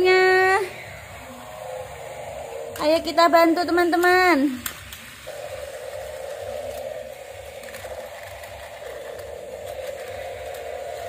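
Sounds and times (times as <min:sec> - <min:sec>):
toy car motors humming: 0:00.0 - 0:11.0.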